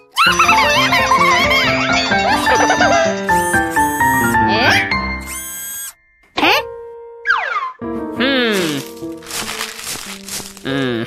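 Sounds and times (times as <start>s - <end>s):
paper banknote crinkling: 8.5s - 10.8s.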